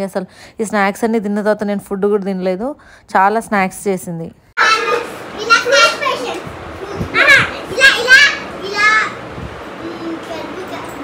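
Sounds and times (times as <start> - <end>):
young children calling out: 4.6 - 10.9.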